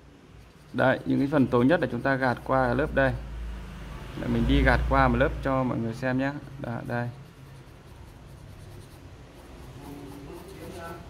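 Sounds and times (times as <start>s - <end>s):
pencil scratching on paper: 0.2s - 2.9s, 6.3s - 11.0s.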